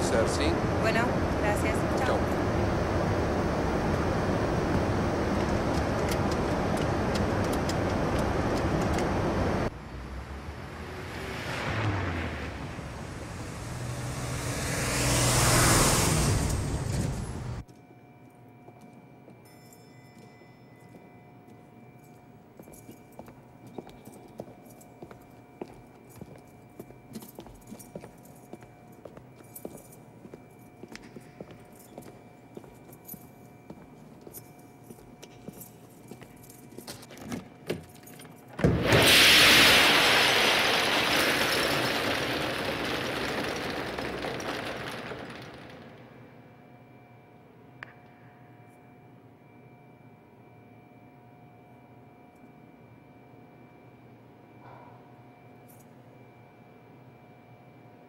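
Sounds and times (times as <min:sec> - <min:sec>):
jet passing with falling whine: 0:00.0 - 0:17.6, 0:38.6 - 0:46.3.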